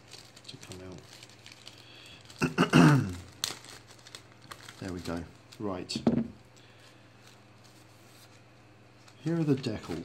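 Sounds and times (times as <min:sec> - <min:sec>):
plastic bag crinkling: 0:00.0 - 0:08.4, 0:09.0 - 0:10.0.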